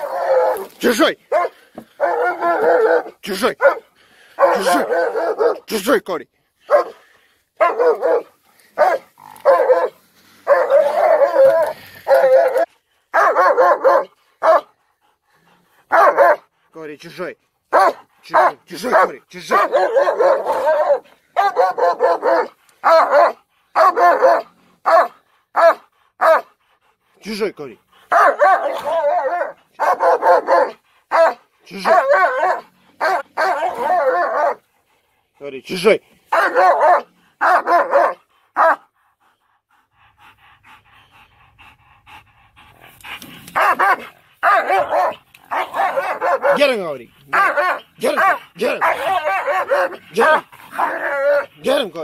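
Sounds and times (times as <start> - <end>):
dog barking: 1.3 - 5.8, 6.7 - 7.0, 7.6 - 14.8, 15.9 - 16.5, 17.7 - 26.6, 28.1 - 34.6, 36.3 - 38.9, 43.6 - 51.8.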